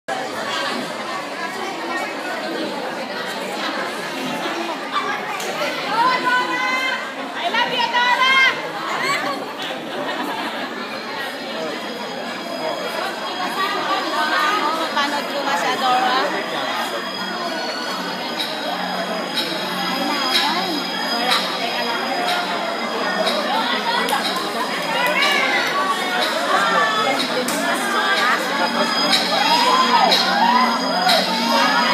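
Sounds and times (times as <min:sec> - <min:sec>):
crowd chatter in a hall: 0:00.1 - 0:31.9
louder voices: 0:00.2 - 0:31.9.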